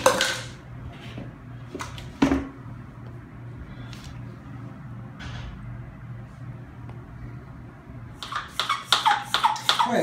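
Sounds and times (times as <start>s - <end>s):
low steady hum: 0.0s - 8.4s
hand pump strokes: 8.2s - 10.0s.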